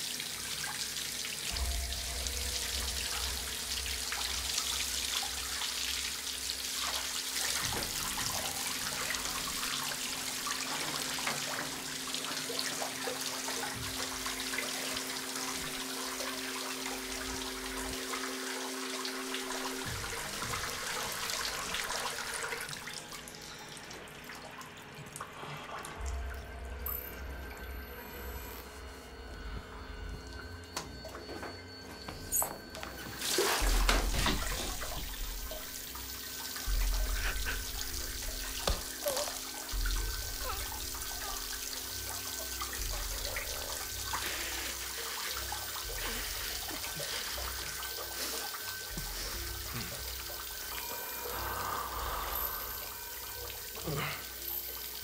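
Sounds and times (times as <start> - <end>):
running water: 0.0 - 26.4, 32.4 - 55.0.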